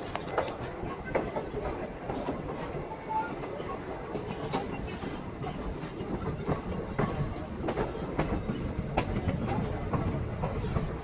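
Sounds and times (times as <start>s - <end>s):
train coach rumbling: 0.0s - 11.0s
wheels clicking over rail joints: 0.0s - 11.0s.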